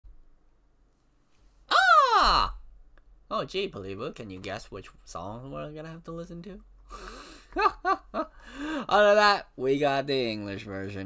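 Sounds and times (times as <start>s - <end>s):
man whooping: 1.7s - 2.6s.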